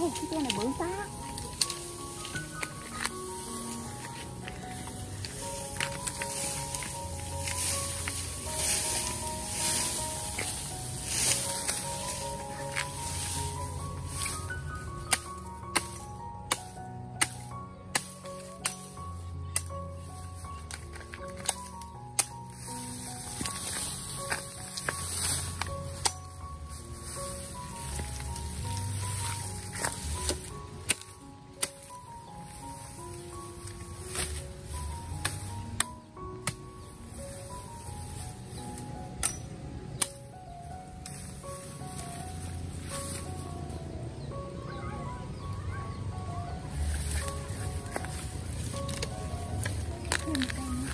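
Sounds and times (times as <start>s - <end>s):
simple background melody: 0.0s - 50.9s.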